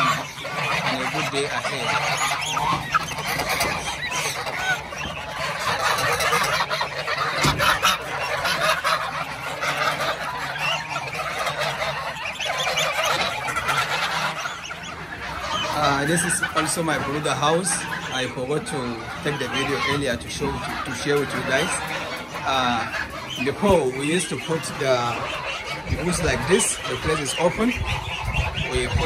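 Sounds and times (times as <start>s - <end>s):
geese honking: 0.0s - 29.0s.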